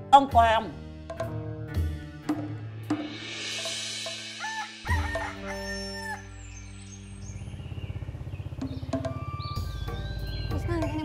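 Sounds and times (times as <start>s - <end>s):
background music: 0.0s - 11.0s
rooster crowing: 4.4s - 6.4s.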